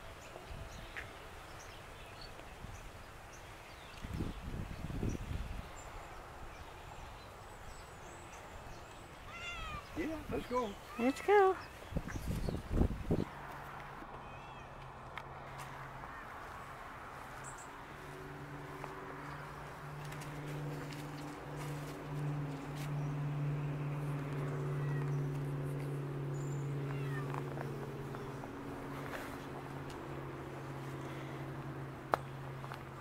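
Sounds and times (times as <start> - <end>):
cat meowing: 9.3 - 9.9, 14.2 - 14.8, 26.8 - 27.4.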